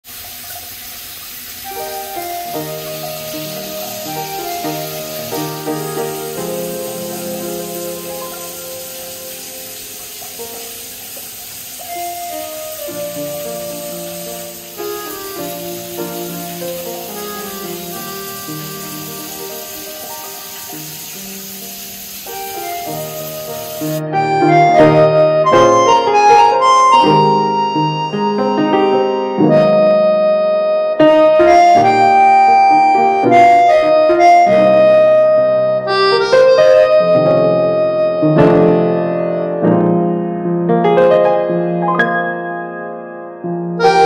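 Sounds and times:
shower water hissing: 0.0s - 24.0s
background music: 1.7s - 10.7s, 11.9s - 20.9s, 22.4s - 39.4s.

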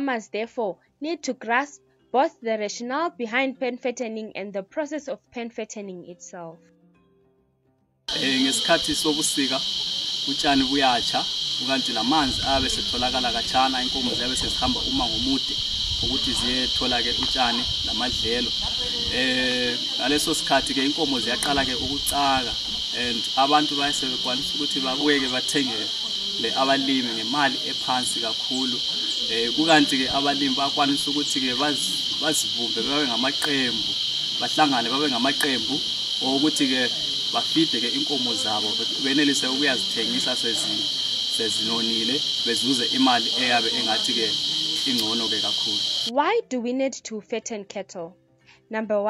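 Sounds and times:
man talking: 8.1s - 9.6s, 10.2s - 46.1s
insects chirring: 8.1s - 46.1s.

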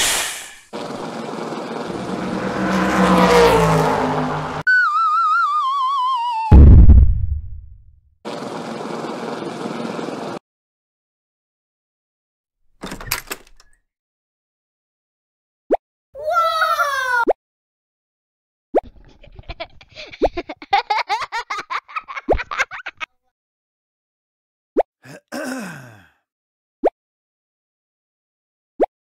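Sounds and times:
rising-pitch pop effect: 6.5s - 7.9s
door opening clicks and rattles: 12.8s - 13.8s
man groaning: 25.0s - 26.2s.

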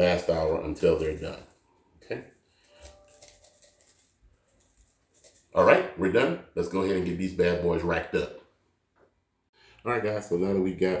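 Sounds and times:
spice patter on chicken: 2.8s - 5.6s.

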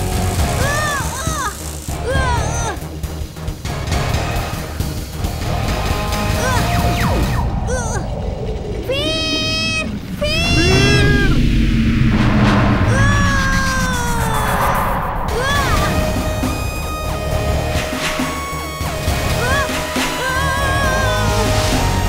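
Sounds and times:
cartoon action music: 0.0s - 11.5s, 12.2s - 22.0s.

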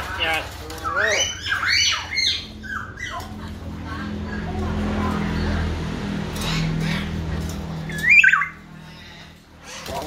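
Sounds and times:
myna bird call: 0.8s - 3.4s, 6.3s - 10.0s.

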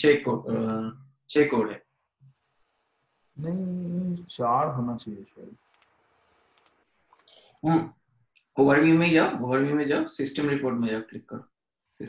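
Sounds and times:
person speaking a syllable: 0.0s - 0.9s, 3.4s - 5.5s.

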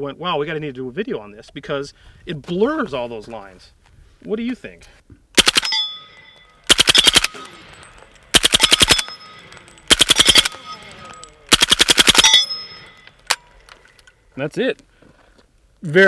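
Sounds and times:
suppressed rifle full-auto bursts: 5.4s - 13.4s.

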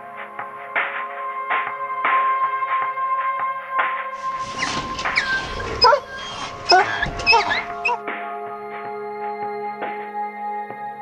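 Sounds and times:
background music: 0.0s - 11.0s
puppies whining and yipping: 4.2s - 8.0s.

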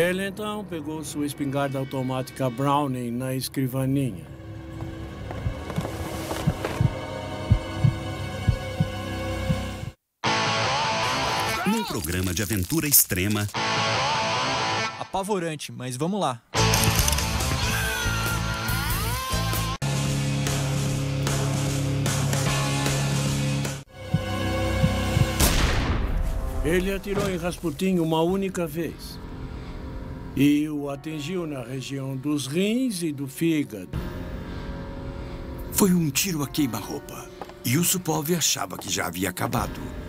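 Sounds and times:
tense sustained music: 0.0s - 11.0s, 19.9s - 27.3s, 28.2s - 38.4s
heartbeat thumps: 5.2s - 10.0s, 24.0s - 25.5s.

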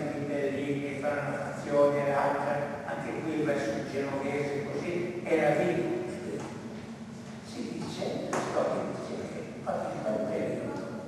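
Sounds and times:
person speaking with echo: 0.0s - 11.0s.

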